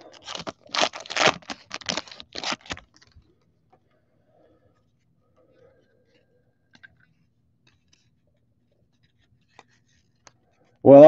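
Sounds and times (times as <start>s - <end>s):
cardboard cards scraping and ticking: 0.0s - 3.2s, 7.1s - 10.5s.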